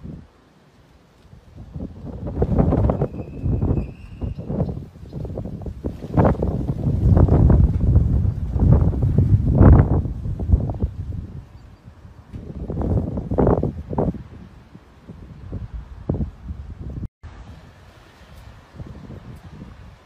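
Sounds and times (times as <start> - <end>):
wind buffeting microphone: 1.2 - 20.0.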